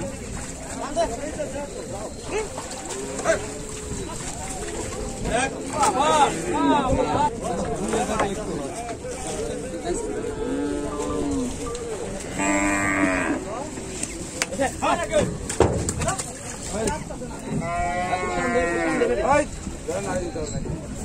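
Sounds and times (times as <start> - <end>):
cattle mooing: 10.2 - 13.6, 17.5 - 19.2.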